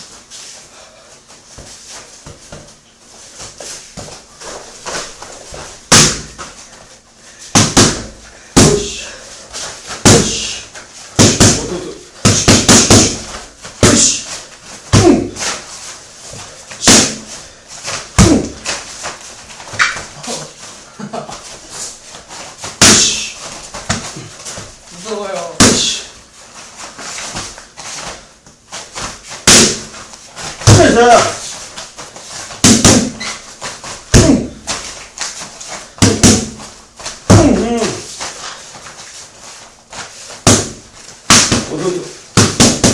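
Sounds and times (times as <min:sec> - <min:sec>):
punches smacking focus mitts: 0:05.9 - 0:06.5, 0:07.6 - 0:09.0, 0:11.2 - 0:14.2, 0:32.6 - 0:33.2, 0:36.0 - 0:38.1, 0:40.4 - 0:42.9.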